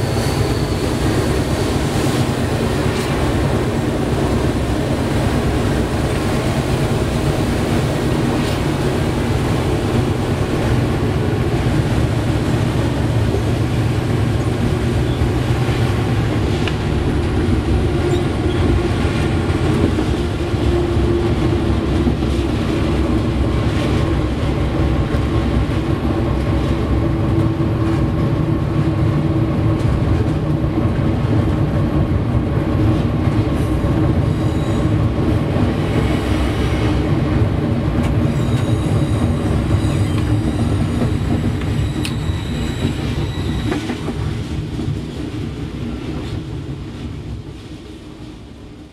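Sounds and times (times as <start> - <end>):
high squeal from wheels: 0.0 - 1.9, 18.0 - 18.7, 34.2 - 35.0, 38.2 - 44.3
diesel locomotive engine drone: 0.0 - 48.9
wheel and rail noise: 0.0 - 48.9.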